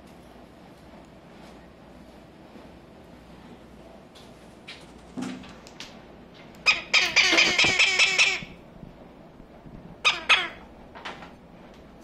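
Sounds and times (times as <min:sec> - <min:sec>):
parrot harsh buzzing call: 0:06.6 - 0:08.6, 0:10.0 - 0:10.7.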